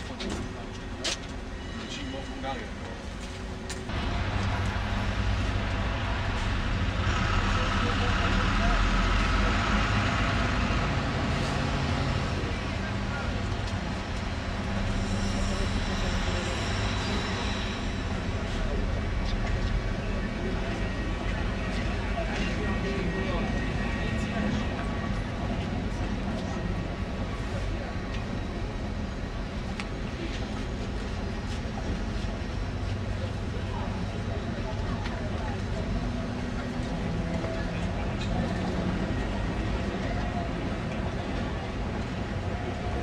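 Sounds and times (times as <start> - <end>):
tram rumbling on tracks: 0.0 - 43.0.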